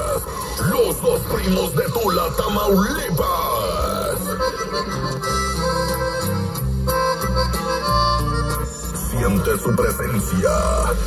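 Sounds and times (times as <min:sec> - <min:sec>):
bass notes: 0:02.7 - 0:11.0
accordion melody: 0:03.6 - 0:11.0.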